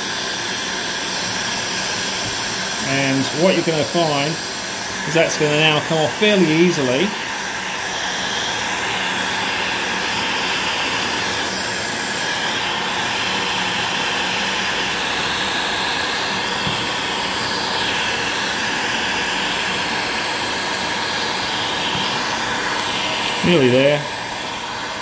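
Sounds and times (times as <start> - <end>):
heat gun fan blowing air: 0.0 - 25.0.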